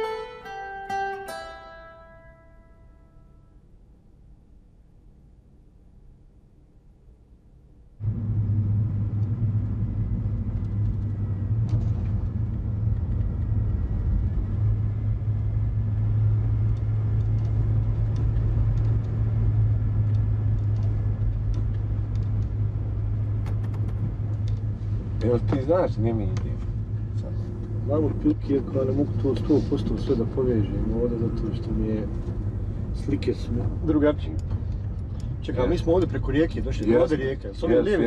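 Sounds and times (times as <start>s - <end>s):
car engine and road noise: 7.9s - 38.0s.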